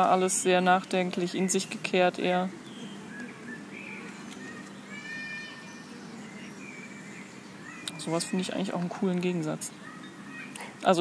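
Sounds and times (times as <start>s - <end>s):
high-pitched animal calls: 3.1s - 8.5s.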